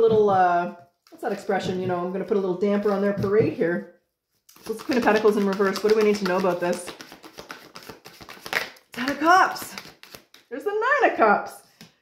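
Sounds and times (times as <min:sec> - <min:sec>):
cards being shuffled: 0:04.5 - 0:10.5.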